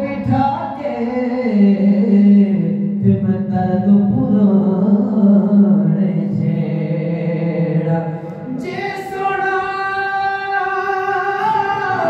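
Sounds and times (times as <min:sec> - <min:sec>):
man singing unaccompanied: 0:00.0 - 0:12.0.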